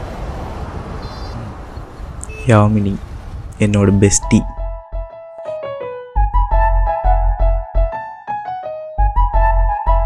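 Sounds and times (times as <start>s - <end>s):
passing traffic rumble: 0.0s - 4.4s.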